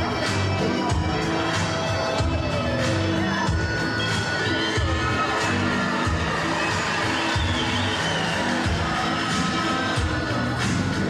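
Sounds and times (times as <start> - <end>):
crowd cheering and shouting: 0.0 - 11.0
music with repeating bass: 0.0 - 11.0.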